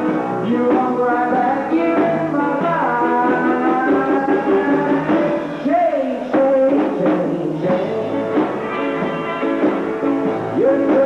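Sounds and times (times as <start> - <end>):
man singing: 0.0 - 9.4, 10.4 - 11.0
guitar: 0.0 - 11.0
upright bass: 0.0 - 11.0.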